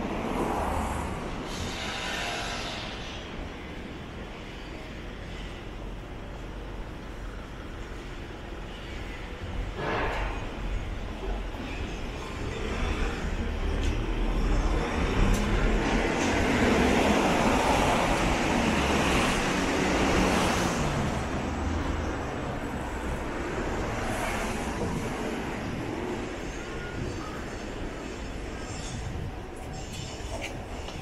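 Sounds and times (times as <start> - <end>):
low traffic rumble: 0.0 - 31.0.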